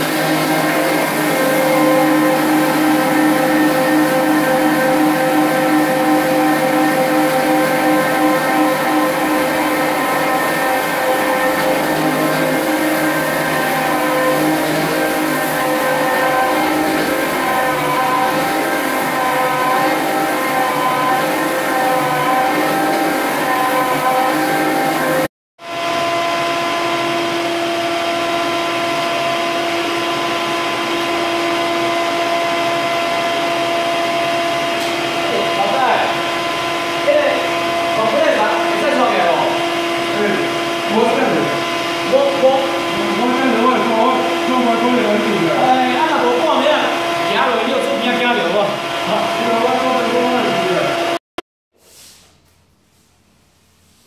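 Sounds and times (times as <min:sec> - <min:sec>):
floor sanding machine humming: 0:00.0 - 0:51.2
vacuum cleaner humming: 0:00.0 - 0:51.2.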